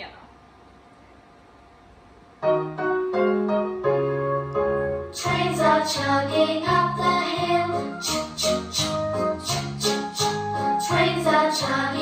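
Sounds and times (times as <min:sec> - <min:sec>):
piano introduction of children's song: 0:02.4 - 0:12.0.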